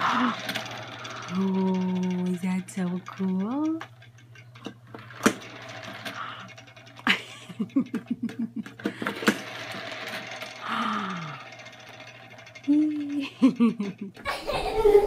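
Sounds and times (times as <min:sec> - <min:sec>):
plastic toy clacking: 0:00.0 - 0:14.3
toy rattling knocks: 0:00.1 - 0:14.3
person laughing: 0:07.0 - 0:09.1, 0:12.7 - 0:15.0.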